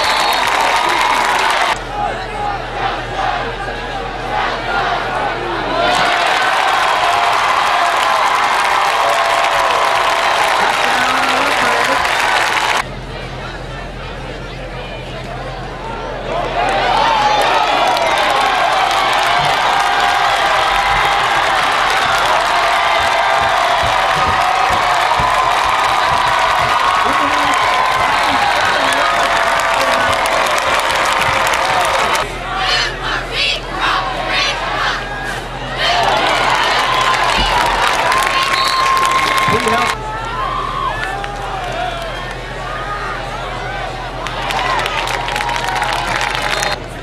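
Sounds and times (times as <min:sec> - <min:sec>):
stadium crowd cheering and shouting: 0:00.0 - 0:47.0.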